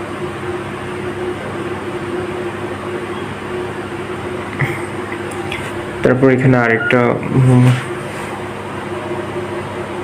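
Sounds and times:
background hum and hiss: 0.0 - 10.0.

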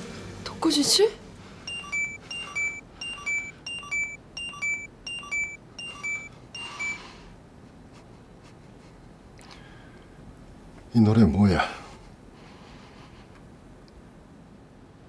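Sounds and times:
short electronic chirps: 1.7 - 7.0.

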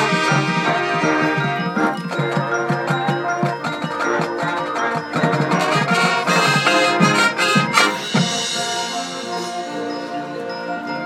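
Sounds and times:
marching band playing: 0.0 - 11.0.

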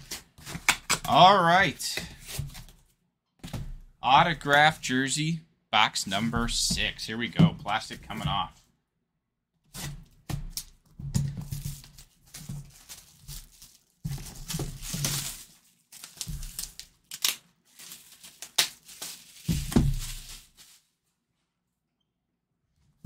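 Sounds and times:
plastic shrink wrap tearing: 11.7 - 20.9
plastic wrap crumpled by hand: 11.7 - 21.0.

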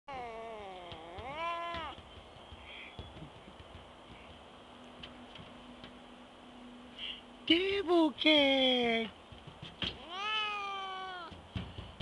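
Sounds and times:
cat meowing: 0.1 - 2.0, 10.0 - 11.4.

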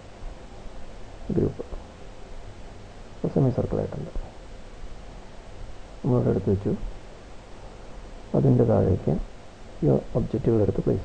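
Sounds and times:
background hiss: 0.0 - 11.0
low electrical hum: 0.0 - 11.0.

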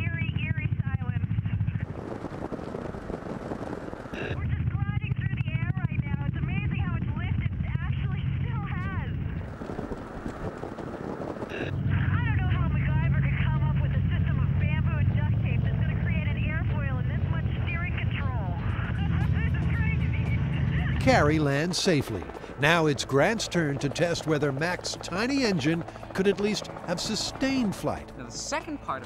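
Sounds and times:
ultralight aircraft drone: 0.0 - 29.0
muffled talking: 11.5 - 29.0.

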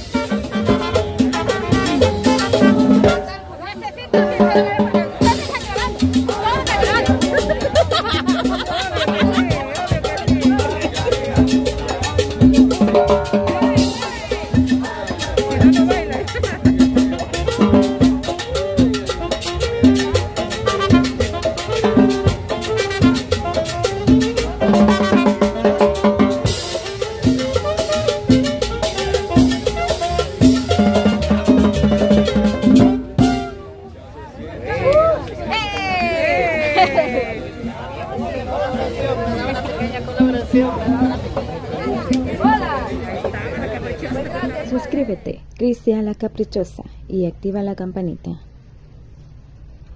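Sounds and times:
drum kit: 0.0 - 3.4, 4.2 - 33.6
bass line: 0.0 - 3.5, 4.1 - 33.7.

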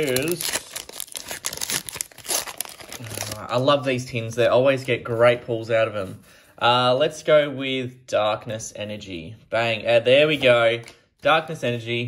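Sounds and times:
foil wrapper crinkling and tearing: 0.0 - 3.6.

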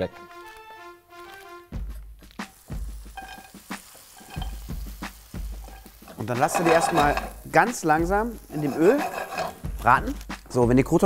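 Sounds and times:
oil sizzling: 0.0 - 10.6
background music: 0.0 - 11.0
bread cubes knocking into pan: 2.4 - 10.0.

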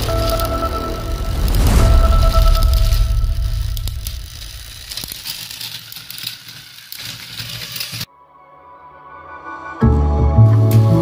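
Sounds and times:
rattling clicks: 0.0 - 8.1
toy train motors running: 0.0 - 8.1
wheels grinding on plastic track: 0.0 - 8.1.

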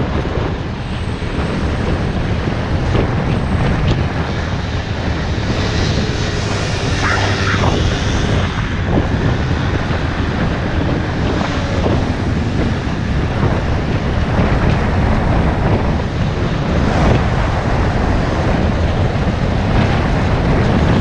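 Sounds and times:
wind rush on microphone: 0.0 - 21.0
scooter engine running: 1.8 - 15.9.

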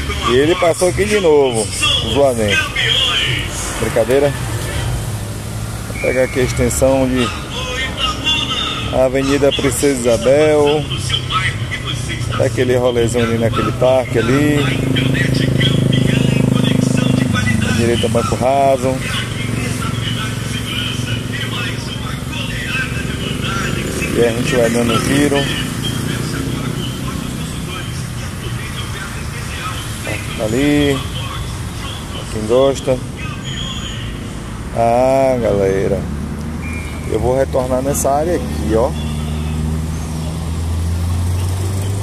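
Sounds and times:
traffic engine rumble: 0.0 - 42.0.

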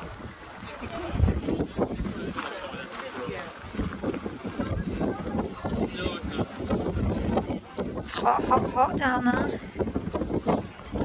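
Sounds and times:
indistinct chatter of people: 0.0 - 11.0
wind buffeting microphone: 0.0 - 11.0.

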